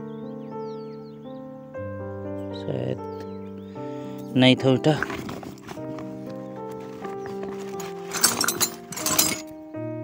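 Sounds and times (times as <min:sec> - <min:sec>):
background music with held notes: 0:00.0 - 0:10.0
metal tools clinking in a sack: 0:04.8 - 0:09.6.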